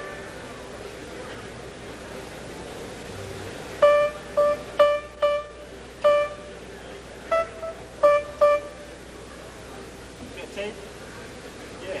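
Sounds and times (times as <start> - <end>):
high notes on stringed instrument: 0.0 - 0.4, 3.8 - 6.6, 7.3 - 8.9.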